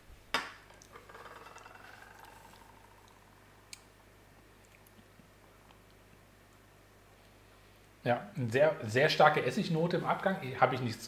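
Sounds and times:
faint falling squeaky mouth sound: 1.2s - 3.4s.

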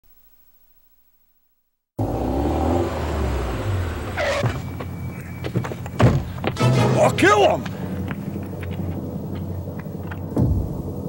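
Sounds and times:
car engine rumbling: 2.0s - 11.0s.

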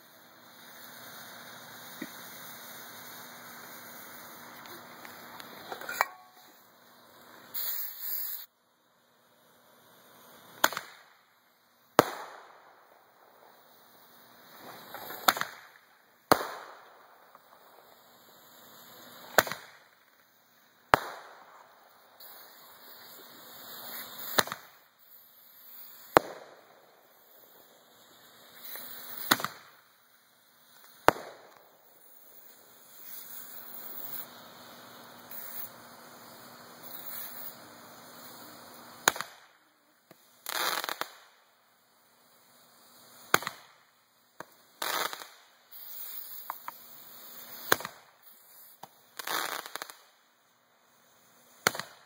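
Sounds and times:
burning tube hiss: 0.0s - 52.0s
roman candle pops: 51.6s - 52.0s.

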